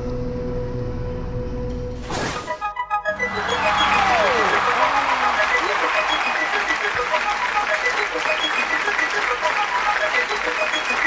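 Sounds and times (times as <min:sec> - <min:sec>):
audience applauding and cheering: 0:03.1 - 0:11.0.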